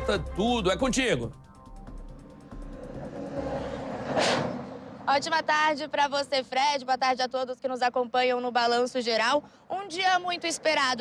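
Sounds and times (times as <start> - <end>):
road traffic passing: 1.5 - 7.6
trucks passing: 2.0 - 6.8.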